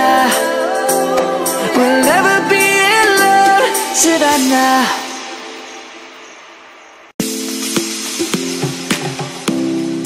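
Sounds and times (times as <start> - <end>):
electronic pop music: 0.0 - 10.0.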